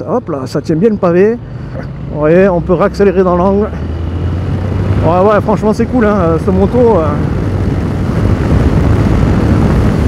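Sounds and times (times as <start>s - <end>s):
wind rush on microphone: 3.6s - 10.0s.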